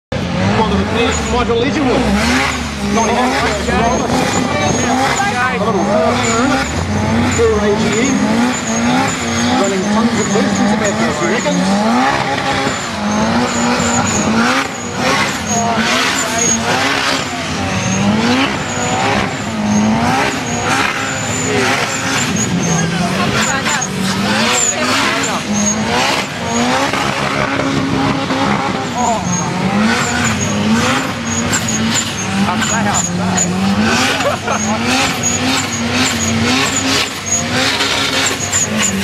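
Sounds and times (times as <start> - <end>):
car engine revving hard: 0.0 - 39.0
tyres screeching: 0.4 - 39.0.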